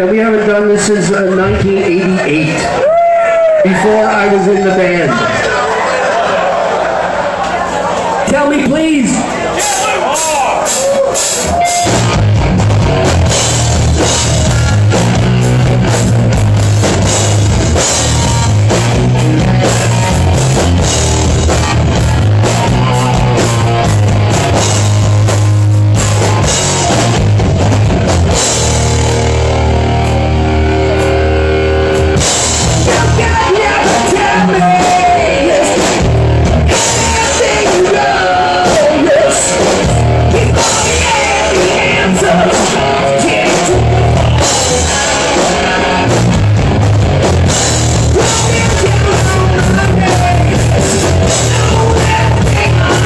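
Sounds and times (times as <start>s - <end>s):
distorted electric guitar: 0.0s - 6.5s, 7.3s - 53.0s
hard rock band playing: 0.0s - 53.0s
pounding drum kit: 8.3s - 53.0s.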